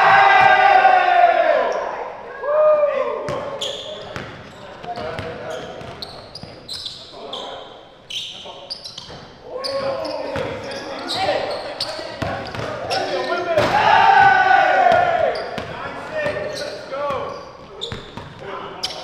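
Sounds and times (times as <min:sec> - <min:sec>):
players shouting in gym: 0:00.0 - 0:04.0, 0:12.6 - 0:17.3
sneakers squeaking on court: 0:03.3 - 0:13.7, 0:15.2 - 0:19.0.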